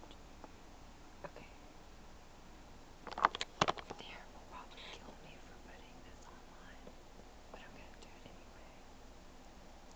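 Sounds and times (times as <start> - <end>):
woman whispering: 1.2 - 1.6, 3.9 - 6.9, 7.5 - 8.9.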